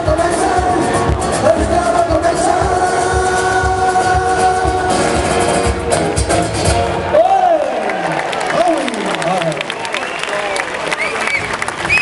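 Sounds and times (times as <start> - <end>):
live band song: 0.0 - 7.6
crowd clapping and cheering: 2.4 - 12.0
crowd shouts: 7.1 - 11.5.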